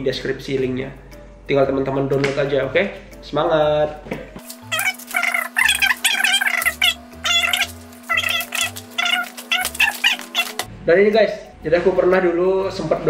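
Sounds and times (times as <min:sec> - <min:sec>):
sped-up high-pitched speech: 0:04.7 - 0:10.6.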